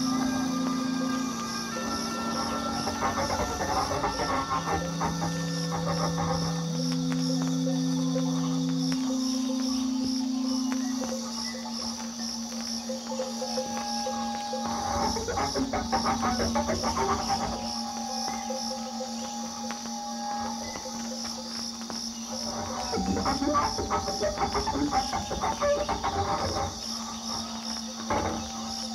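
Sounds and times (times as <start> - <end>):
dense crackling texture: 0.0 - 28.9
high pulsing tone: 0.0 - 28.9
steady drone tones: 0.0 - 28.9.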